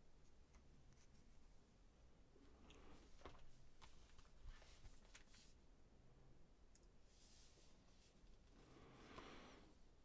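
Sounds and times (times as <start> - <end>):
soft clicks: 6.7 - 7.0.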